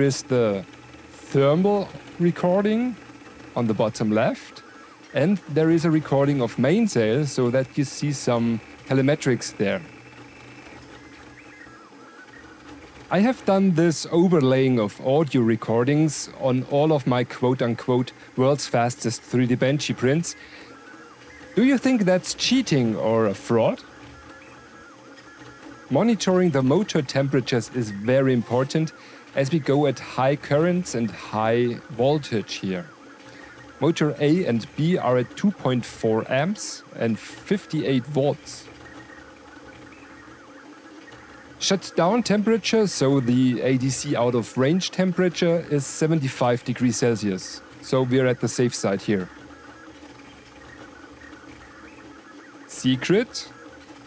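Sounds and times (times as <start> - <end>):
stepper motors whining: 0.0 - 54.0.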